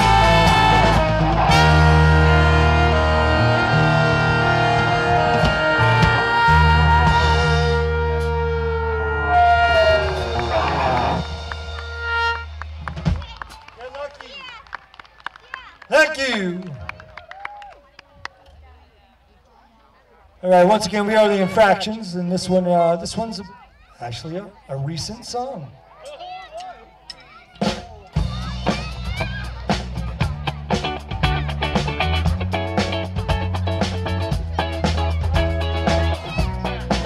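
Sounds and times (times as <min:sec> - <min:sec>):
live band holding final chord: 0:00.0 - 0:13.5
scattered clapping: 0:09.8 - 0:18.6
voices: 0:12.9 - 0:37.0.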